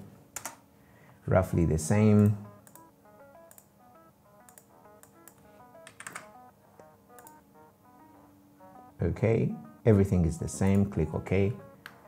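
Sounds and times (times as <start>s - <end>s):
computer mouse clicks: 0.4s - 0.6s, 2.2s - 2.9s, 3.5s - 3.7s, 4.4s - 7.4s
quiet background music: 1.2s - 12.0s.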